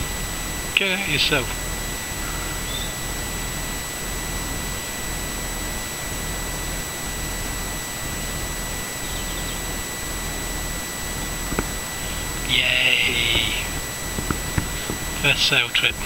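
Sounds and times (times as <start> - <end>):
high-pitched whine: 0.0 - 16.0.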